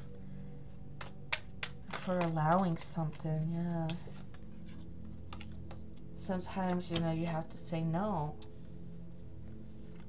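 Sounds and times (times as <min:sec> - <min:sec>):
faint low hum: 0:00.0 - 0:10.0
playing cards clicking on table: 0:01.0 - 0:03.2.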